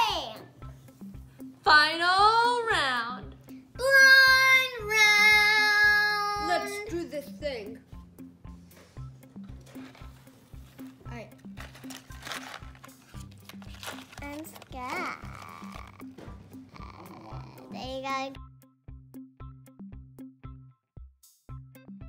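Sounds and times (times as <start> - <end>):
children's voice sounds: 0.0 - 0.5, 3.8 - 6.9
background music with steady beat: 0.0 - 22.0.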